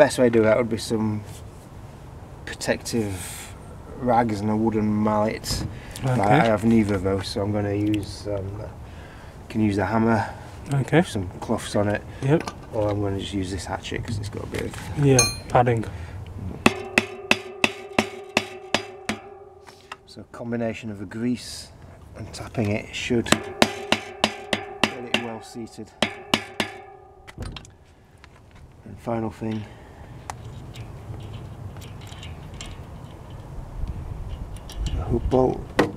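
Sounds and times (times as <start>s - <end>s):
hatchet tapping metal crank: 15.2s - 15.6s, 16.7s - 19.4s, 23.3s - 26.9s.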